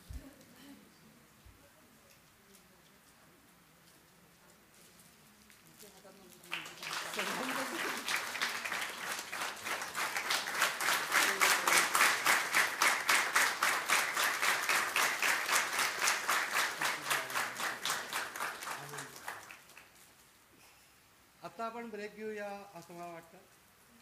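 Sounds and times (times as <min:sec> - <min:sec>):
audience applauding: 0:06.5 - 0:20.0.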